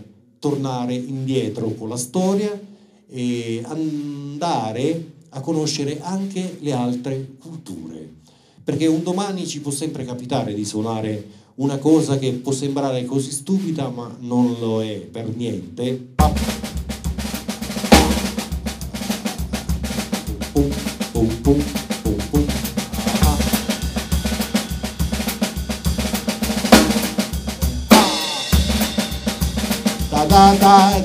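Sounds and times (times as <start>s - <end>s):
bass drum beat: 16.2s - 31.0s
cymbals: 16.2s - 31.0s
snare drum strokes: 16.2s - 31.0s.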